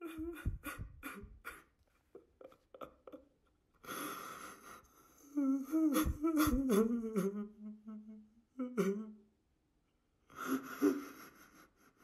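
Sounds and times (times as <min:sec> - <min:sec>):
person humming: 0:05.3 - 0:09.2.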